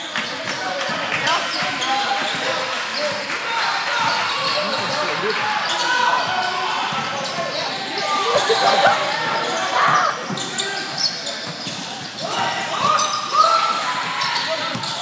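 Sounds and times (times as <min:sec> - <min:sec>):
overlapping voices in gym: 0:00.0 - 0:14.7.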